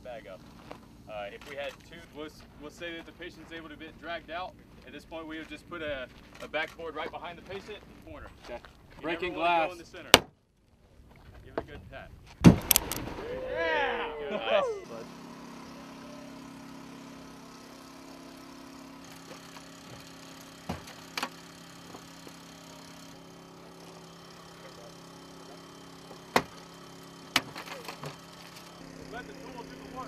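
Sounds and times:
engine humming: 0:12.4 - 0:30.0.

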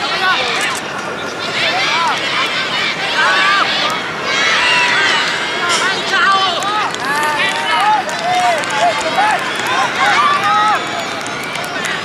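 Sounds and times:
background crowd hum: 0:00.0 - 0:12.0
children shouting: 0:00.0 - 0:12.0.

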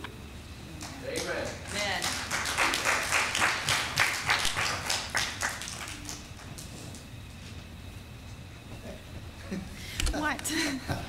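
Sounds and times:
congregation clapping: 0:00.8 - 0:07.0.

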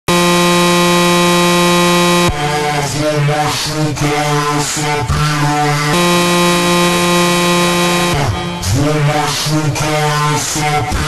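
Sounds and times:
distorted electronic buzzing tone: 0:00.0 - 0:02.6, 0:05.7 - 0:09.2.

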